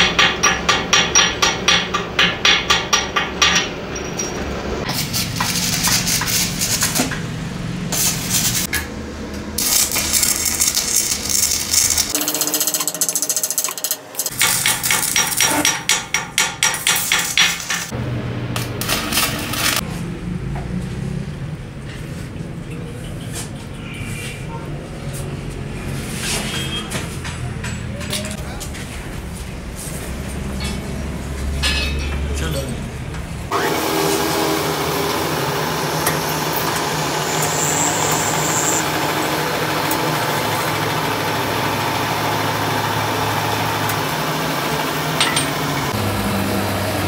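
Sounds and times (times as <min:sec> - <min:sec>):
welding arc crackle: 0:04.9 - 0:07.0, 0:09.6 - 0:15.3, 0:36.5 - 0:39.5.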